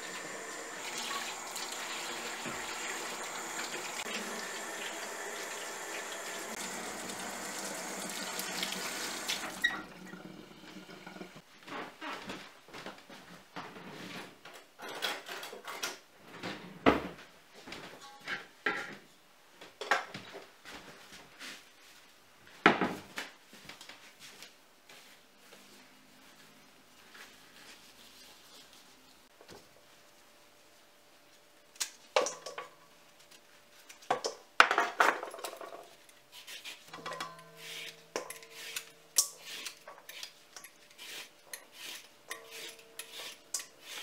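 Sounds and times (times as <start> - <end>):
tap water running into sink: 0.0 - 11.4.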